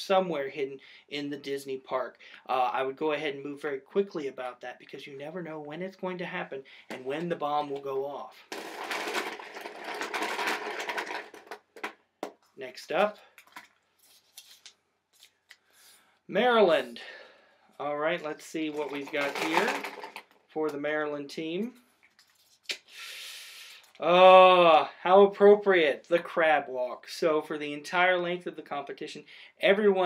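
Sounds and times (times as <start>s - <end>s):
plastic balls rattling: 7.7s - 12.5s, 18.3s - 20.4s
paper rustling: 8.5s - 11.9s, 13.3s - 16.0s, 18.6s - 20.2s.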